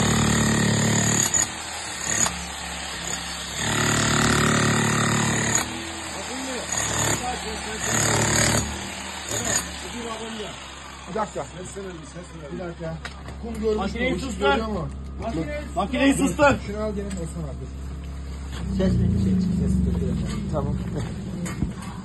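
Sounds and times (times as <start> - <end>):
demolition hammer chiselling concrete: 0.0 - 12.6.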